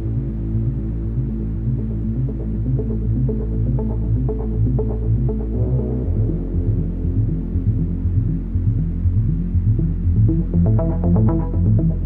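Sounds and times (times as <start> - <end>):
low electronic drone: 0.0 - 12.0.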